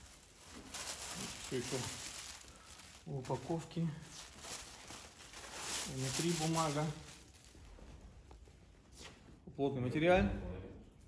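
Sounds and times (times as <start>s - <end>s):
packing paper rustling: 0.0s - 8.4s
cloth being handled: 0.0s - 9.5s.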